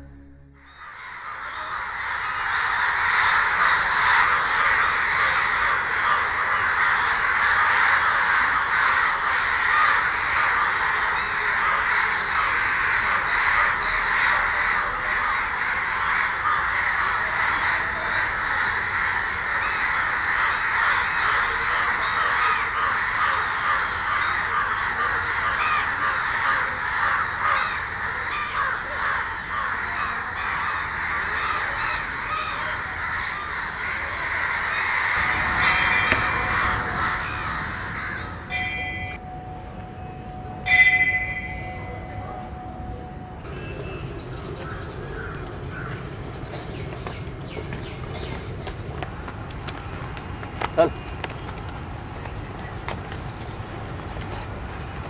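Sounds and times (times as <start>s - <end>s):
flock of crows cawing: 0.7s - 39.2s, 43.9s - 46.8s.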